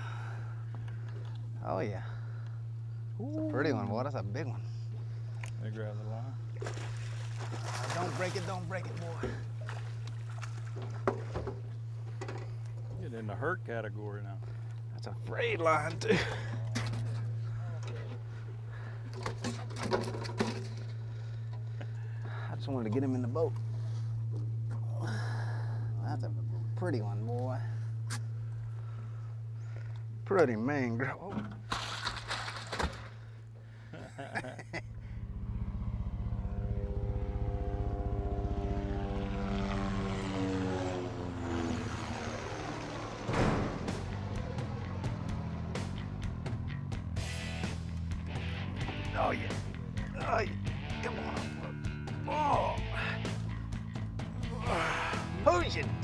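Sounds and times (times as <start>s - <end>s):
propeller aircraft engine drone: 0.0s - 31.1s, 33.2s - 56.0s
steady low hum: 0.0s - 56.0s.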